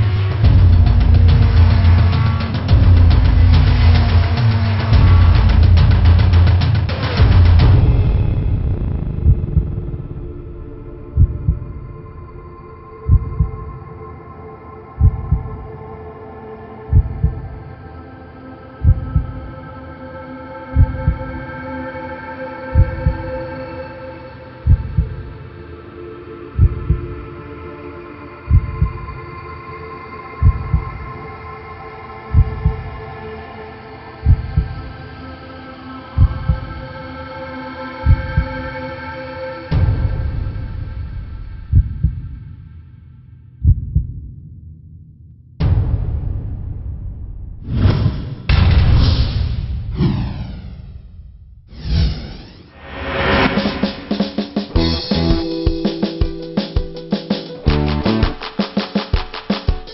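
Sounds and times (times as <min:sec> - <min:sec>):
low heartbeat-like thumps: 0:00.0 - 0:13.8, 0:15.0 - 0:15.6, 0:16.9 - 0:17.6, 0:18.8 - 0:19.4, 0:22.8 - 0:23.2, 0:24.6 - 0:25.3, 0:26.6 - 0:27.2, 0:34.2 - 0:34.8, 0:39.7 - 0:42.6, 0:43.6 - 0:44.9.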